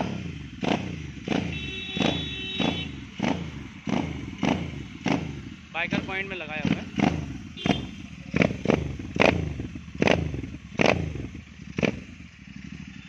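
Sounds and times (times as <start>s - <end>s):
motorcycle engine idling: 0.0s - 13.0s
motorcycle engine revving: 0.0s - 13.0s.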